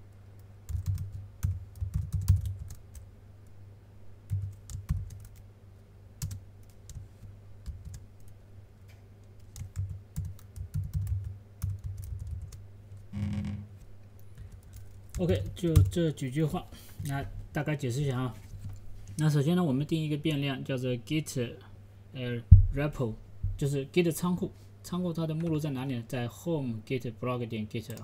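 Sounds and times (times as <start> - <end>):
typing on computer keyboard: 0.2 - 3.0, 4.3 - 5.4, 6.2 - 7.0, 7.6 - 8.3, 9.4 - 12.6, 14.2 - 16.0.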